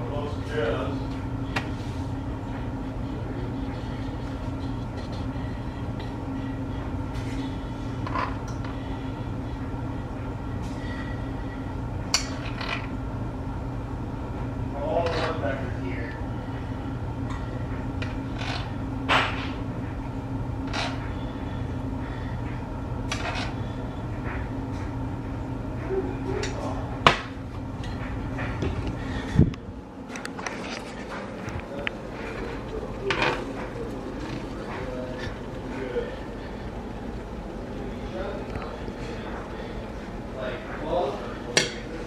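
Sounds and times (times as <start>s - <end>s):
steady low hum: 0.0s - 42.0s.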